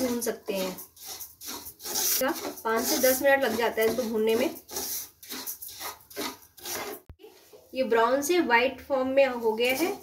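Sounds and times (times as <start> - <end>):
spatula scraping grains in pan: 0.0 - 7.9, 9.2 - 10.0.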